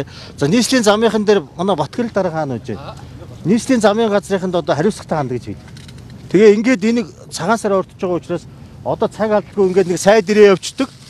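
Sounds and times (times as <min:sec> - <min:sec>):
man talking: 0:00.0 - 0:05.6, 0:06.3 - 0:11.0.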